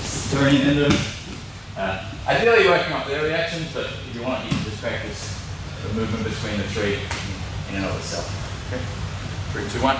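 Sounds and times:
man speaking: 1.8 - 9.9.

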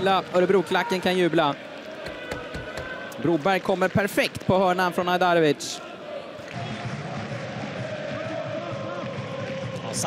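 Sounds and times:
crowd din of voices: 0.5 - 3.2
crowd chanting: 1.6 - 3.2, 5.3 - 10.0.

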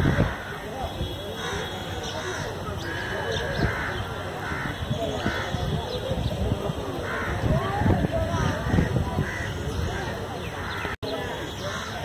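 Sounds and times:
indistinct voices: 0.0 - 12.0
crows cawing: 1.4 - 5.6, 7.1 - 7.5, 8.3 - 12.0.

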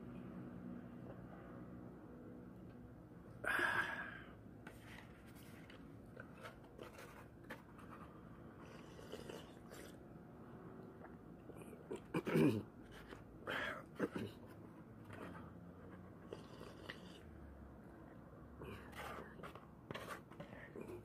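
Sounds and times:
person sipping: 8.6 - 10.0, 16.2 - 17.3.

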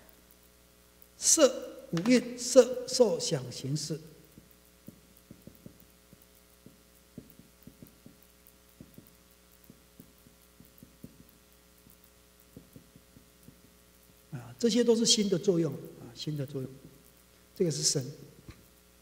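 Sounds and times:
low electrical hum: 0.0 - 19.0
marker pen writing on whiteboard: 4.3 - 13.8.

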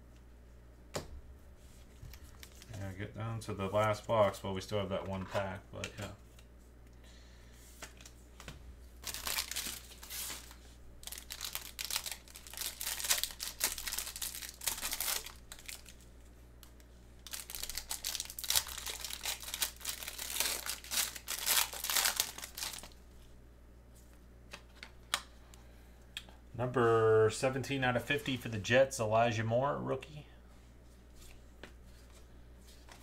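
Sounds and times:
plastic wrapper crinkling and tearing: 2.1 - 2.9, 9.0 - 16.0, 16.7 - 23.0.

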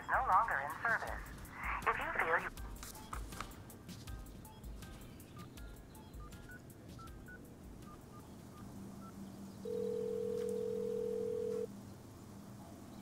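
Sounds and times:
phone ringback tone: 9.6 - 11.7
phone keypad beeps: 9.7 - 11.7.

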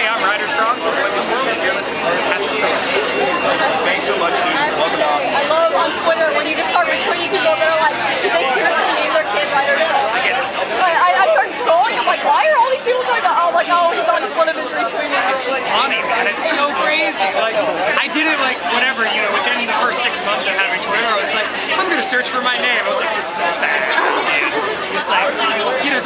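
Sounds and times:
close-up conversation: 0.0 - 26.0
crowd chatter: 0.0 - 26.0.

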